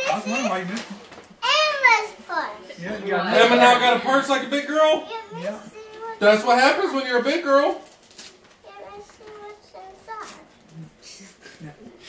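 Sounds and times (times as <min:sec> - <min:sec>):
people talking: 0:00.0 - 0:07.8
young child's high-pitched sounds: 0:01.4 - 0:02.7, 0:05.1 - 0:06.2, 0:08.6 - 0:10.6.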